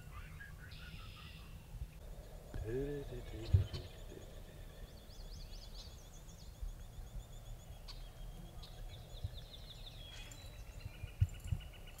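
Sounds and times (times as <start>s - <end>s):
low hum-like murmur: 0.0s - 11.7s
faint bird chirps: 0.0s - 12.0s
songbirds trilling: 0.0s - 12.0s.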